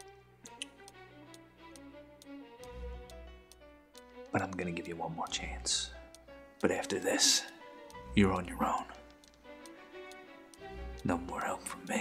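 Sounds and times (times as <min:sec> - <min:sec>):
clock-like ticking: 0:00.0 - 0:12.0.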